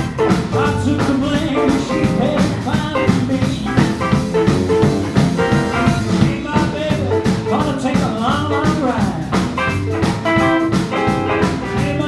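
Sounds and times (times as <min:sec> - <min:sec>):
electric guitar: 0:00.0 - 0:12.0
live blues band playing: 0:00.0 - 0:12.0.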